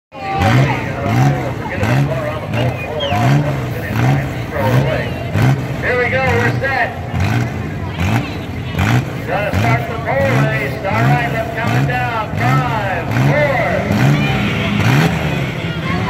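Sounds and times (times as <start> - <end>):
car engines revving: 0.1 - 16.0.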